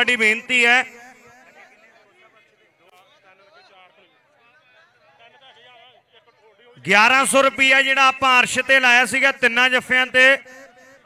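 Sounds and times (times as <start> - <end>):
male commentator speaking: 0.0 - 2.4, 6.6 - 11.0.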